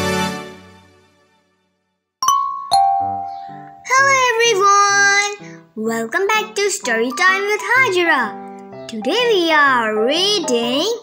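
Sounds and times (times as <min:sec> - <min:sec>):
two-note chime: 0:02.2 - 0:03.9
light intro music: 0:02.2 - 0:05.1
high voice: 0:03.3 - 0:11.0.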